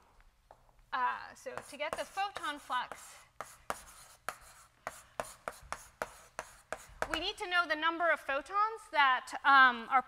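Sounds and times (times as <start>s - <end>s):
chalk tapping and scraping on blackboard: 1.5s - 7.4s.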